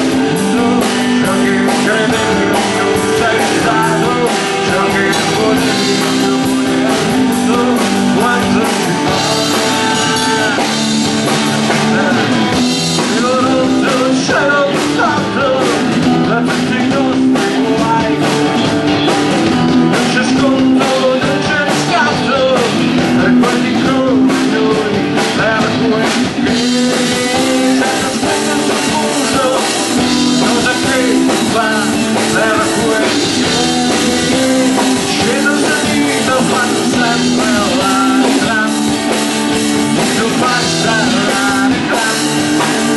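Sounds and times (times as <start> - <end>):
drum kit: 0.0 - 42.9
electric guitars: 0.0 - 42.9.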